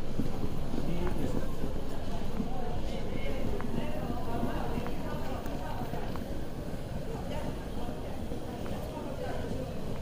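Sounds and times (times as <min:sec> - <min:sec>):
chatter of voices: 0:00.2 - 0:10.0.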